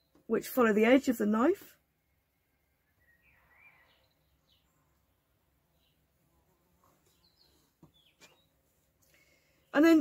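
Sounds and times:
faint high chirps: 2.0 - 5.0.

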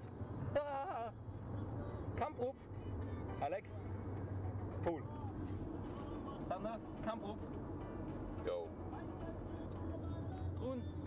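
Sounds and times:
car engine drone: 0.0 - 11.0
road noise: 0.0 - 11.0.

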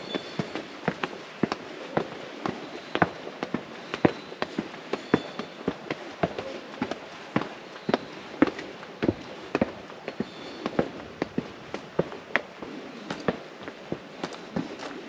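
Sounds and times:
footsteps on stone steps: 0.0 - 15.0.

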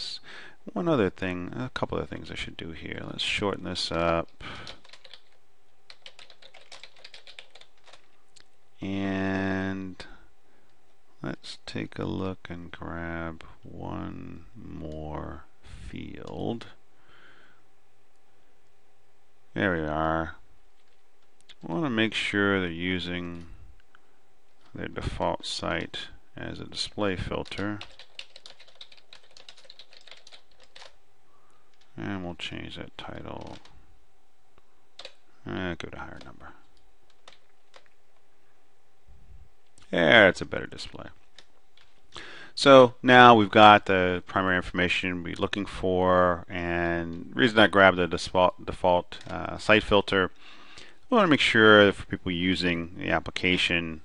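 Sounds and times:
computer keyboard typing: 4.5 - 8.1, 27.4 - 31.0, 33.4 - 33.7, 35.0 - 35.2, 36.1 - 37.9.

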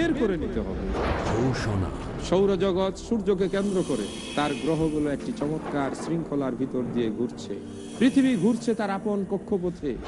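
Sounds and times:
man speaking: 1.6 - 7.4.

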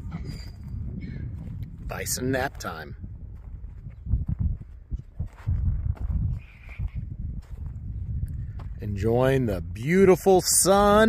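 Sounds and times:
footsteps on grass and dirt: 0.4 - 9.4.

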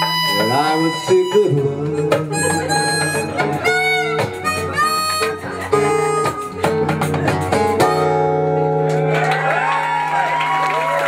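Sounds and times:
hand percussion: 0.0 - 8.2
harmonica melody: 0.0 - 8.8
strummed acoustic guitar: 0.0 - 8.9
audience cheering and applause: 8.8 - 11.0.

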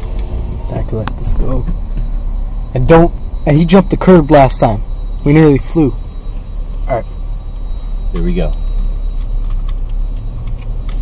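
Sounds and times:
car engine and tyres rumbling: 0.0 - 11.0.

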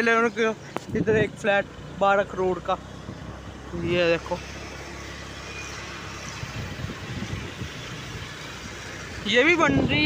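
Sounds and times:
road and traffic noise: 0.0 - 10.0
small vehicle engine running: 0.0 - 10.0.

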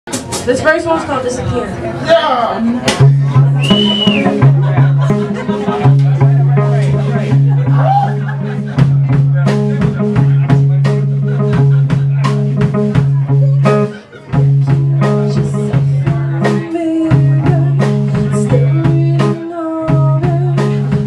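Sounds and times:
drum kit beat: 0.1 - 0.9, 2.8 - 21.0.

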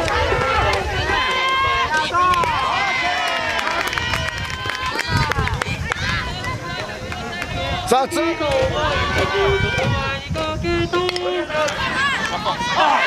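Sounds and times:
young players shouting: 0.0 - 10.2, 10.8 - 13.0.

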